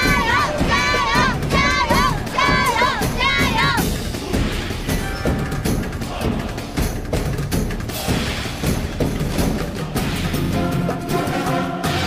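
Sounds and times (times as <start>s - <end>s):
women shouting a cheer in unison: 0.0s - 3.9s.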